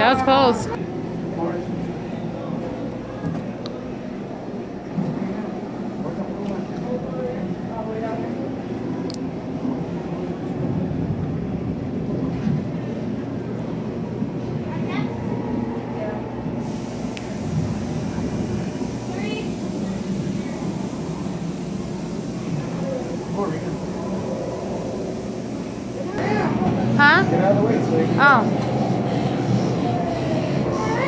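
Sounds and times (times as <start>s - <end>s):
busy room rumble: 0.0s - 31.0s
indistinct voices and chatter: 0.0s - 31.0s.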